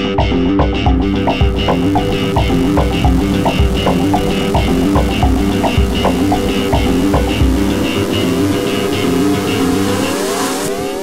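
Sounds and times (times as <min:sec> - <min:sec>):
background music: 0:00.0 - 0:11.0
car engine revving: 0:01.2 - 0:11.0.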